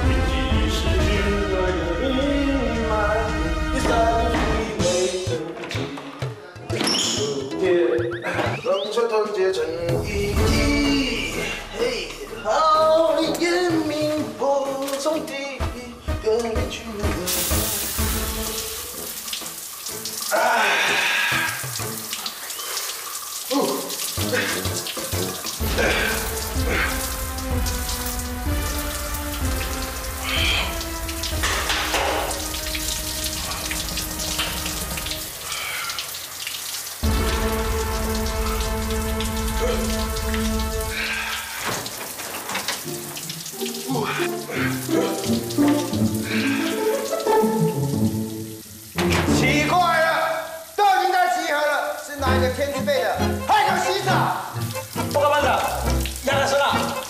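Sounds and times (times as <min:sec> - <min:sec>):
music playing: 0:00.0 - 0:22.2, 0:23.5 - 0:35.5, 0:37.0 - 0:41.3, 0:42.8 - 0:50.2, 0:52.1 - 0:57.0
shower water spraying: 0:09.9 - 0:57.0.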